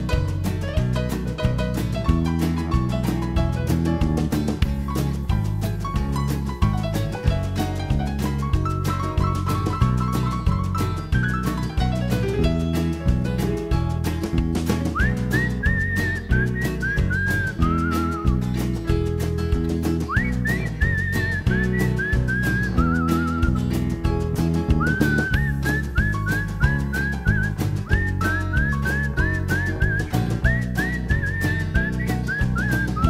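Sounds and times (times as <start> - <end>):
blues band playing: 0.0 - 33.0
whistle-like lead melody: 8.2 - 13.0, 14.6 - 33.0.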